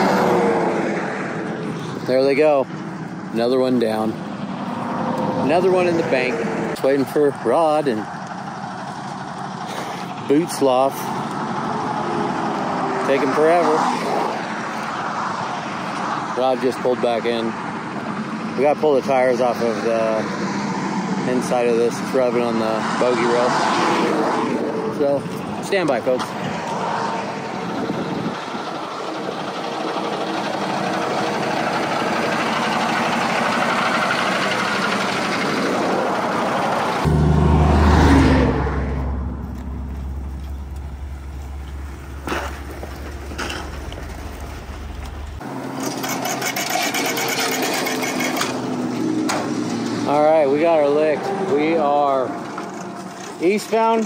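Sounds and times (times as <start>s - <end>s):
heavy truck passing: 0.0s - 54.0s
man speaking: 5.4s - 8.0s
deep rumble: 37.0s - 45.4s.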